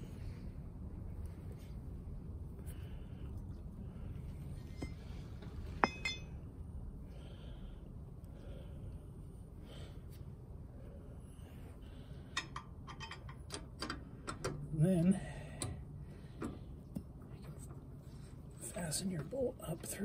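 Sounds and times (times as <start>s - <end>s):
low steady hum: 0.0s - 20.0s
metal tools clinking: 5.8s - 6.3s.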